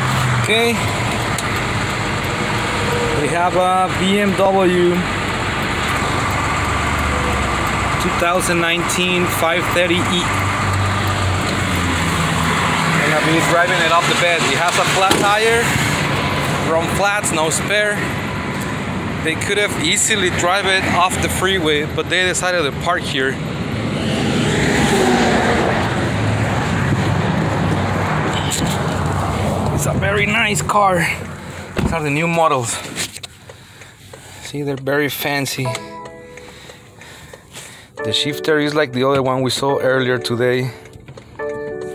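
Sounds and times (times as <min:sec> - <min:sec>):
freeway traffic passing: 0:00.0 - 0:41.9
vehicle engine rumbling: 0:00.0 - 0:41.9.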